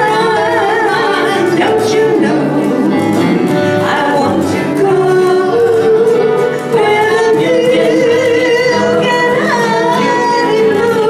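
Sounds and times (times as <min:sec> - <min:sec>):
acoustic guitar: 0:00.0 - 0:11.0
steel guitar: 0:00.0 - 0:11.0.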